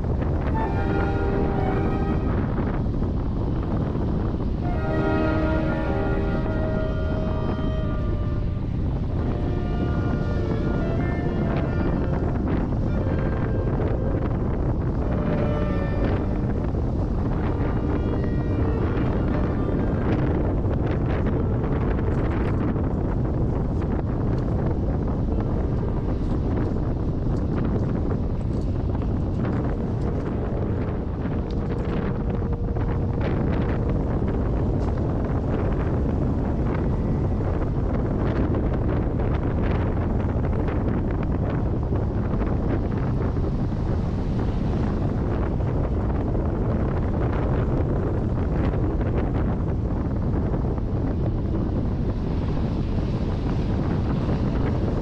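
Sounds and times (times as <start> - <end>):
car road rumble: 0.0 - 55.0
wind buffeting microphone: 0.0 - 55.0.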